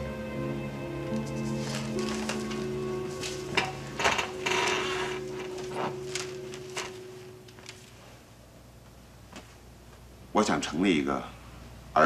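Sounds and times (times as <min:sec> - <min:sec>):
soft background music: 0:00.0 - 0:08.5
papers rustling: 0:01.1 - 0:08.2.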